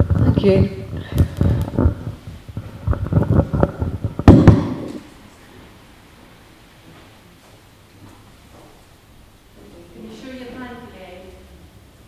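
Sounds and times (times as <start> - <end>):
microphone handling thumps: 0.0 - 5.1.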